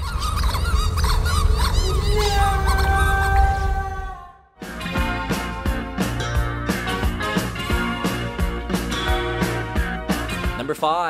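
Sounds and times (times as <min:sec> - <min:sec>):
squeaky honk-like squeals: 0:00.0 - 0:03.8
heavy rumbling bass: 0:00.0 - 0:04.2.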